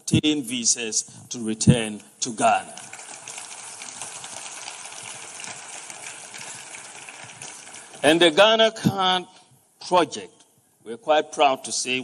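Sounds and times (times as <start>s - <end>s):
audience applauding: 2.6s - 8.4s.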